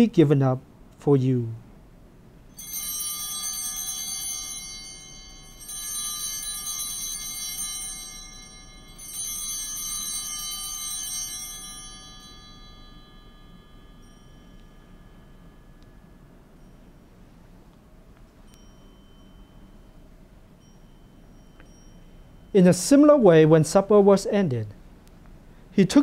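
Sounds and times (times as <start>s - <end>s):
altar bells ringing: 2.5s - 24.6s.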